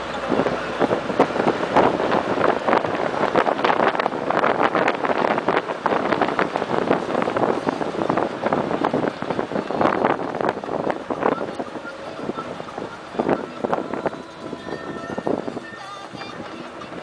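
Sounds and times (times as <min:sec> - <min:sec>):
wind noise on microphone: 0:00.0 - 0:17.0.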